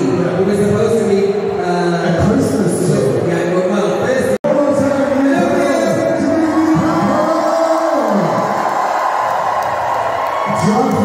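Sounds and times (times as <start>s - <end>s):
crowd cheering: 5.4s - 11.0s.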